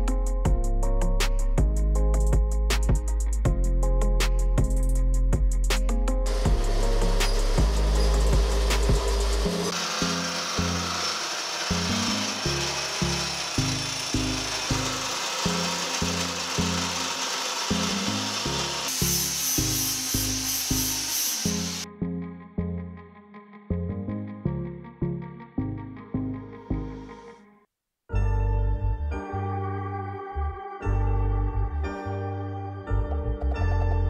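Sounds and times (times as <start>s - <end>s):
music with stepping bass line: 0.0s - 9.7s
hole saw grinding steel tube: 6.3s - 21.8s.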